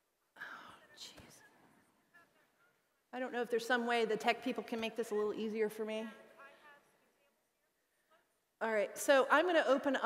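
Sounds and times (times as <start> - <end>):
breathy whisper into microphone: 0.4 - 2.2.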